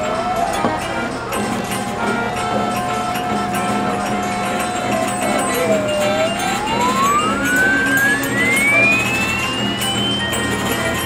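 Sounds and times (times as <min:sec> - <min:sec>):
pure tone gliding upward: 0:03.5 - 0:11.0.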